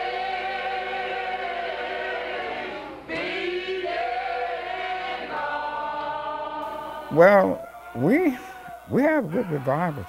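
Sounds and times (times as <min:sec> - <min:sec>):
men singing together: 0:03.1 - 0:10.0.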